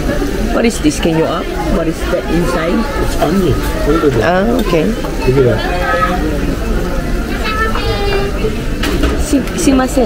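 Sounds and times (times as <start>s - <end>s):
voices: 0.0s - 10.0s.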